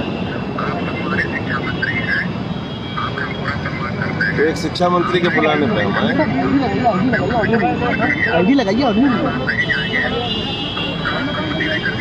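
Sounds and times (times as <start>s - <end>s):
traffic noise: 0.0s - 12.0s
crowd murmur: 3.0s - 12.0s.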